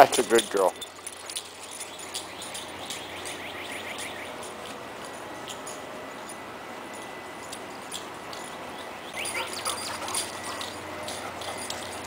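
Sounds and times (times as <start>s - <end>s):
dog yipping: 9.1s - 11.7s.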